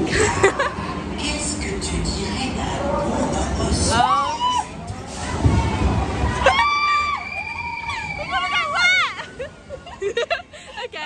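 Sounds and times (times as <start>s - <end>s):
low rumbling ride noise: 0.0s - 11.0s.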